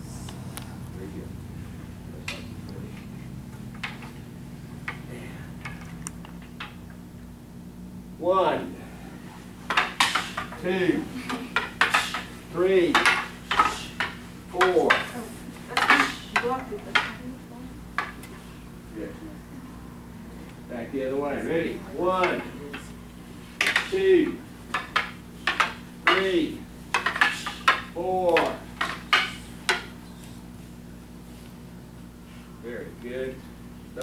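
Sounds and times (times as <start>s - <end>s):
wooden swords clacking: 2.2s - 6.9s, 9.7s - 17.2s, 17.9s - 18.4s, 22.0s - 23.0s, 23.6s - 30.2s.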